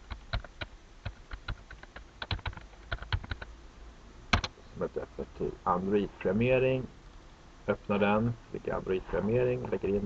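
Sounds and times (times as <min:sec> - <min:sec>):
typing on computer keyboard: 0:00.0 - 0:03.5, 0:04.3 - 0:04.5.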